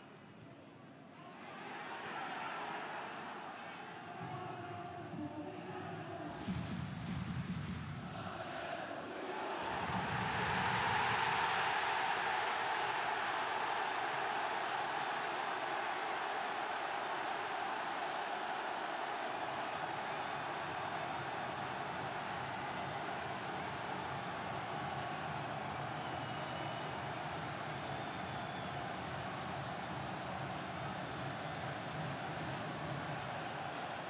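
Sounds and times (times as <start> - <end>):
stadium crowd cheering: 1.2 - 4.8, 6.2 - 34.0.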